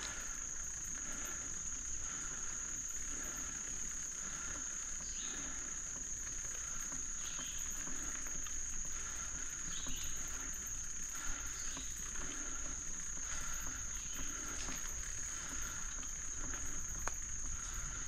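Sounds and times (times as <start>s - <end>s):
bicycle tyres rolling on dirt: 0.0s - 18.0s
high-pitched insect chorus: 0.0s - 18.0s.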